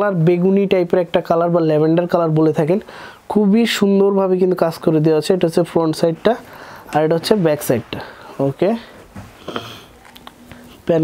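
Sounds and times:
fabric rustling: 5.6s - 11.0s.

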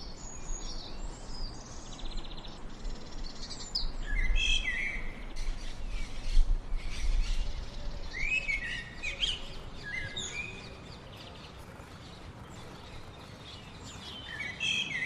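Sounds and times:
songbirds chirping: 0.0s - 15.0s.

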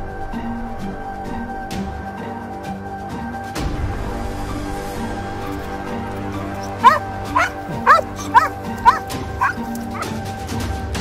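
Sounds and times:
background music: 0.0s - 11.0s
dog barking high-pitched: 6.6s - 10.2s.

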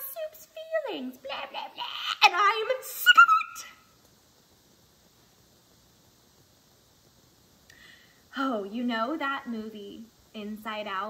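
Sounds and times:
woman screaming: 1.3s - 3.8s.

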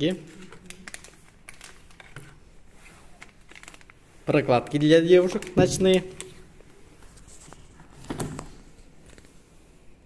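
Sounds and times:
plastic packaging clicks and rustling: 0.0s - 2.5s, 3.1s - 6.5s.

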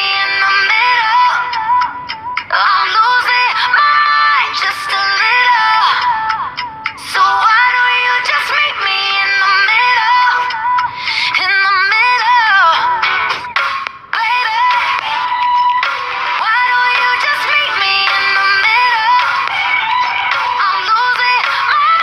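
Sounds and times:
pop song with high vocals: 0.0s - 22.0s.

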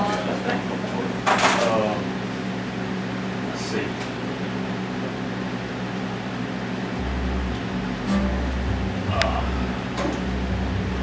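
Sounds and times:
electrical hum and hiss: 0.0s - 11.0s
low rumble: 6.9s - 11.0s.

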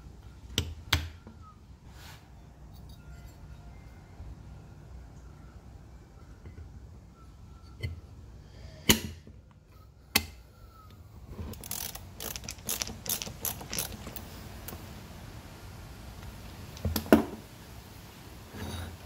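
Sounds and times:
metal parts knocking: 11.5s - 14.3s
screwdriver clicking: 11.5s - 14.3s.

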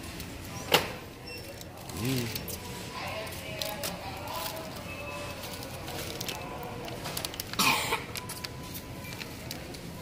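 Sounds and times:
person coughing: 7.6s - 8.1s.

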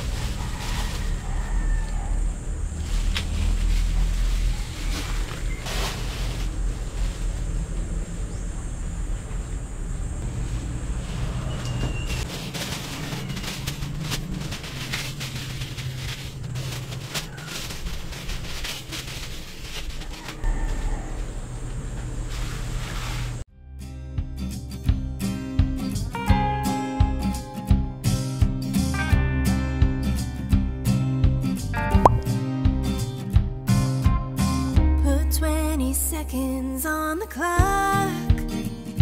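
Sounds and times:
plastic bags crinkling: 0.0s - 1.8s, 2.7s - 7.6s, 12.1s - 20.4s
steady low rumble: 1.0s - 11.2s.

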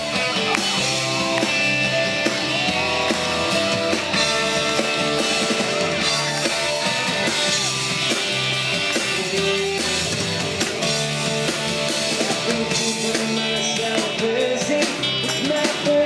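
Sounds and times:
drum kit beat: 0.0s - 16.0s
electric guitars: 0.0s - 16.0s.

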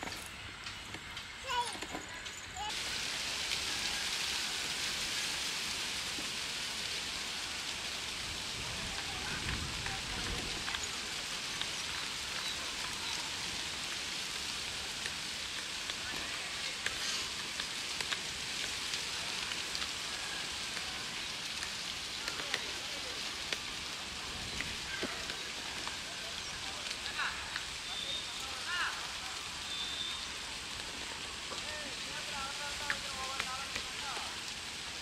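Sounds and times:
water rushing through pipe: 0.0s - 35.0s.

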